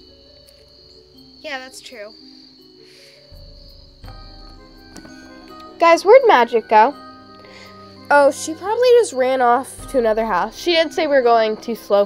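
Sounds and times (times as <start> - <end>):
cricket trill: 0.0 - 12.0
soft background music: 0.0 - 12.0.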